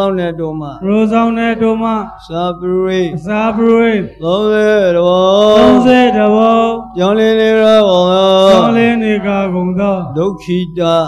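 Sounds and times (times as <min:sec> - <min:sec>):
monk chanting: 0:00.0 - 0:11.0.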